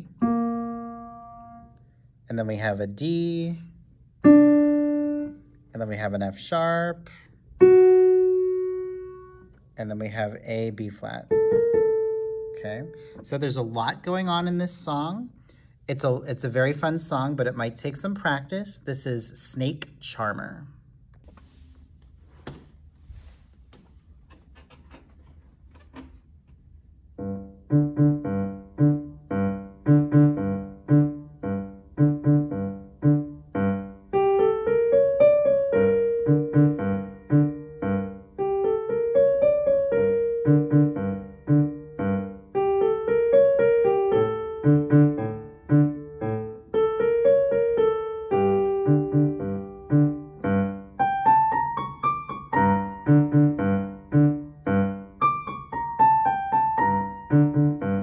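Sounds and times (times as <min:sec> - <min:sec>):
digital piano minor-key piece: 0:00.0 - 0:15.2, 0:26.9 - 0:58.0.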